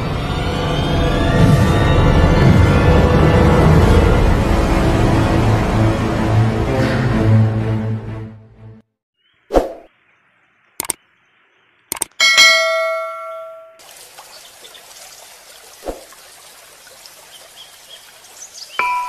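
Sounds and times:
steady outdoor hiss: 9.2s - 12.5s, 13.8s - 19.0s
clicks: 10.8s - 11.0s, 11.9s - 12.2s
ringing ding: 12.2s - 13.8s, 18.8s - 19.0s
mallet percussion music: 18.8s - 19.0s.

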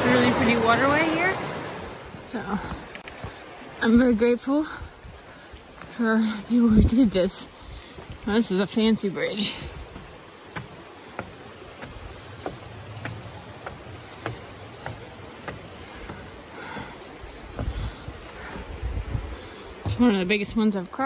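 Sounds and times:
creek rushing: 0.0s - 21.0s
footsteps on wooden planks: 2.6s - 3.5s, 5.1s - 21.0s
wind buffeting microphone: 2.6s - 21.0s.

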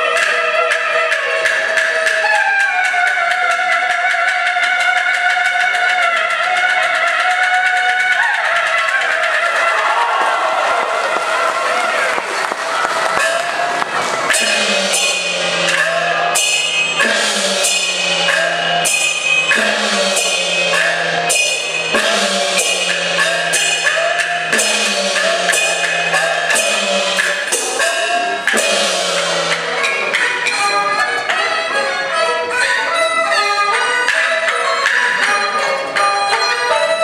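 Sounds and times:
recorded accompaniment: 0.0s - 37.0s
drum gong and cymbal strokes: 14.3s - 31.4s.

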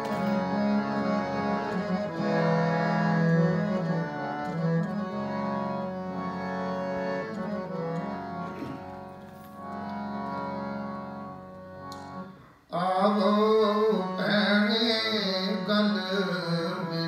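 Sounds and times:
harmonium chords and melody: 0.0s - 17.0s.

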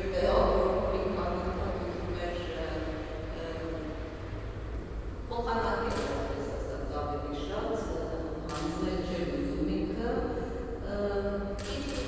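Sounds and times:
person talking: 0.0s - 3.9s, 5.3s - 12.0s
steady low hum: 0.0s - 12.0s.

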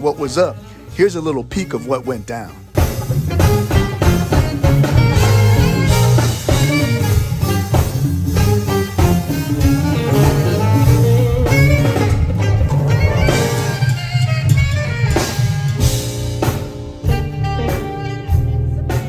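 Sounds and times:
saxophone: 0.5s - 19.0s
drum kit beat: 1.0s - 19.0s
electric bass line: 1.2s - 19.0s.

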